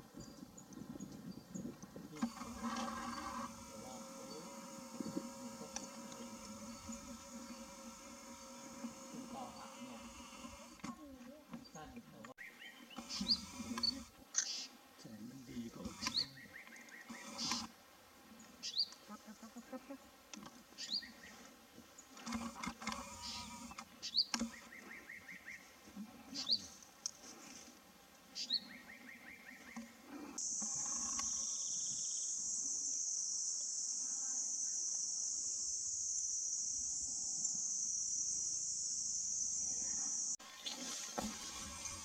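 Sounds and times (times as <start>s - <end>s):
high insect drone: 1.3s - 11.1s, 30.4s - 42.0s
scratchy bird trill: 12.9s - 14.6s, 15.8s - 17.7s.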